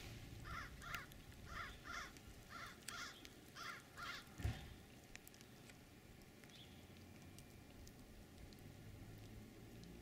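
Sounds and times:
bird calling: 0.4 - 4.8.

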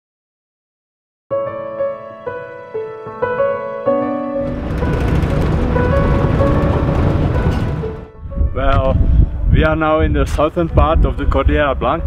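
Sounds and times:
piano music: 1.3 - 11.2
vehicle driving on gravel: 4.4 - 8.1.

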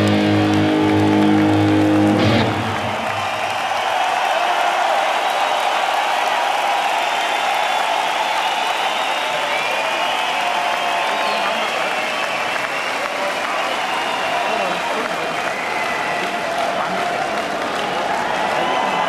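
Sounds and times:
electric guitar sustained chord: 0.0 - 2.9
crowd cheering and applauding: 0.0 - 19.0.

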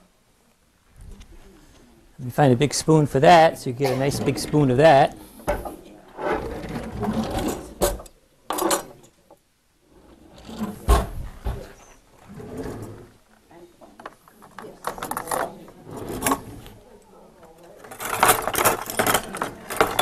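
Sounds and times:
voices in room: 0.0 - 20.0
knocks and clinks of utensils: 17.9 - 20.0.

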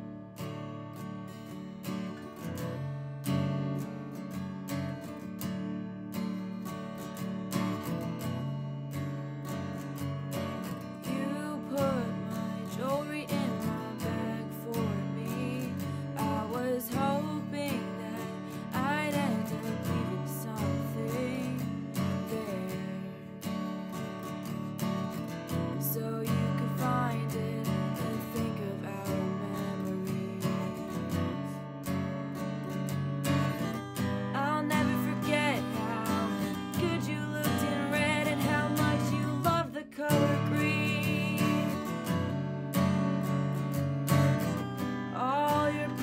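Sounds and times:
strummed acoustic guitar: 0.0 - 46.0
woman singing: 10.6 - 24.0, 24.8 - 31.6, 33.7 - 42.4, 44.8 - 46.0.

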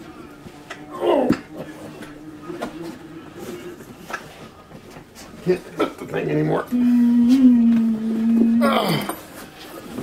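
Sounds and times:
faint strained hum: 0.0 - 4.6, 5.7 - 10.0.

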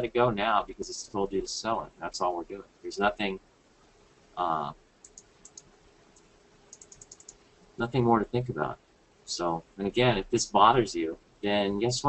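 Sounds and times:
faint steady hum: 0.0 - 12.0
typing on computer keyboard: 5.0 - 5.7, 6.7 - 7.4.

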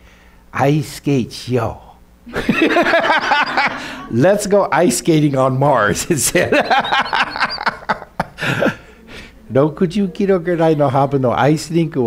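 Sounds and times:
breathy exhale: 0.0 - 0.4
man laughing: 2.3 - 4.3, 5.9 - 8.9.

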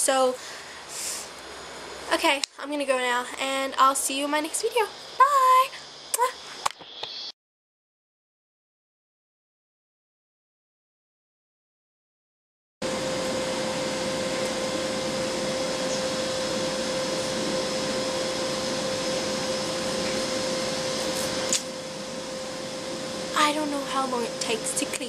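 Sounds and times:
girl speaking: 0.0 - 0.4, 2.1 - 6.4, 23.4 - 25.0
steady whirring hum: 0.0 - 7.2, 12.8 - 25.0
sharp click: 21.5 - 21.7.

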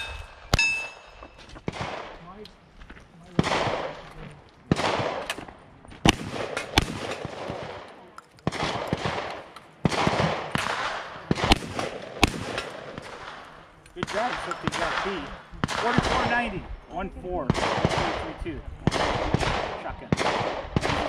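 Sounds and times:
rifle shots hitting steel targets: 0.0 - 2.2, 3.4 - 4.1, 4.7 - 16.4
gunshot echo: 0.0 - 2.4, 3.4 - 4.1, 4.7 - 16.6, 17.5 - 21.0.

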